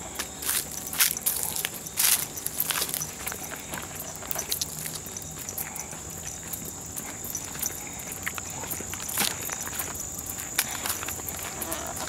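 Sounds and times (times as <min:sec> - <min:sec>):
footsteps on gravel: 0:00.0 - 0:12.0
insects trilling: 0:00.0 - 0:12.0.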